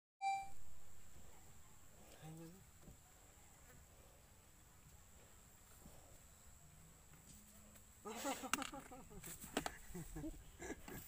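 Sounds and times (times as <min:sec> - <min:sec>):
faint high whine: 0:00.2 - 0:01.2.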